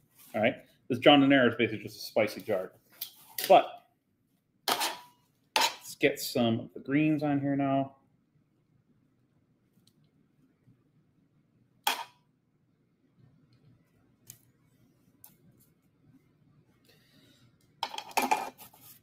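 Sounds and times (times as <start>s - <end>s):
utensils clattering: 4.7s - 5.9s, 17.8s - 18.6s.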